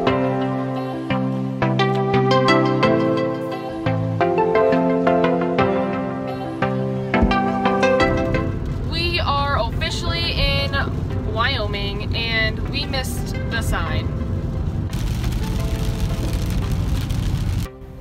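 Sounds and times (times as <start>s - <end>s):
background music: 0.0s - 18.0s
low road rumble: 3.8s - 18.0s
tyres hissing on wet road: 14.6s - 18.0s.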